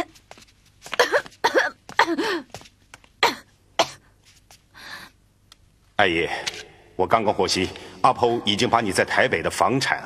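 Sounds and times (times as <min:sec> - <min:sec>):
woman sobbing: 0:01.0 - 0:02.5, 0:03.2 - 0:03.5.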